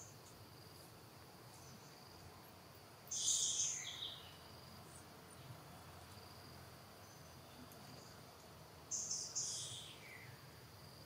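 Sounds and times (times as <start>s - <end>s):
faint insect chirring: 0.0s - 11.0s.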